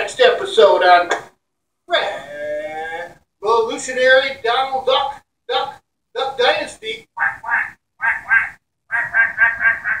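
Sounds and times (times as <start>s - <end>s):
person imitating duck quacks: 7.2s - 10.0s.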